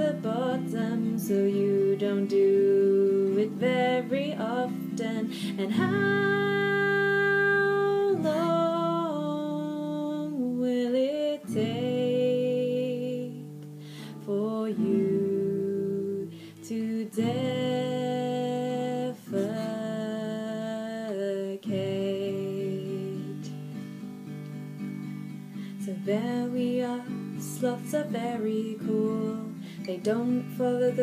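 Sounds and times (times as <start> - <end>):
acoustic guitar strumming: 0.0 - 10.6, 11.4 - 21.1, 21.7 - 31.0.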